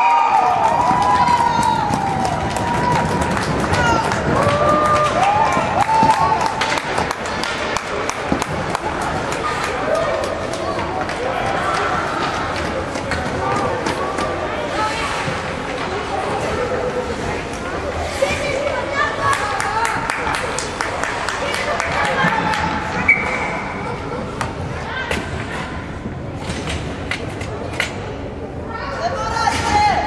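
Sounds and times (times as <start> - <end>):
young players shouting and cheering: 0.0 - 7.4
hockey sticks and skates clacking: 0.5 - 16.2, 17.1 - 25.6, 26.4 - 28.1.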